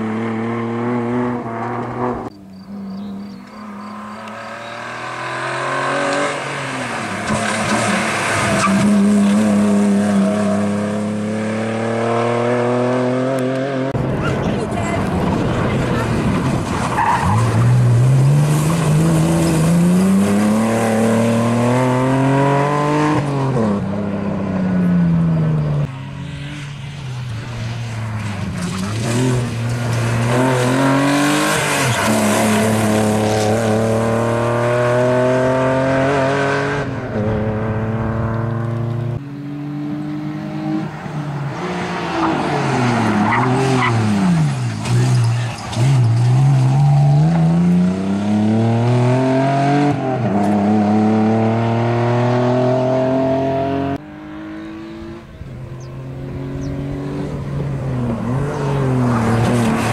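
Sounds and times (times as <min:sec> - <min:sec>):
car engine revving: 0:00.0 - 0:59.9.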